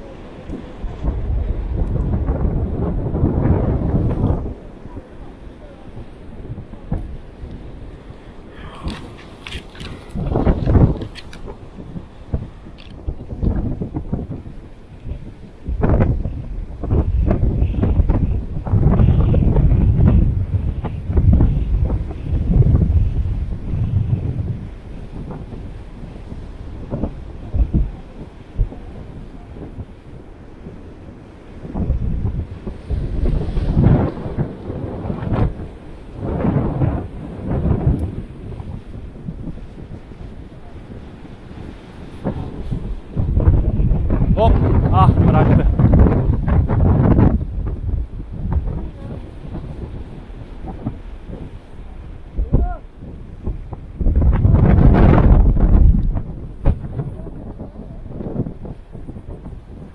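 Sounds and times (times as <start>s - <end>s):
surf breaking on rocks: 0.0s - 59.9s
wind buffeting microphone: 0.0s - 59.9s.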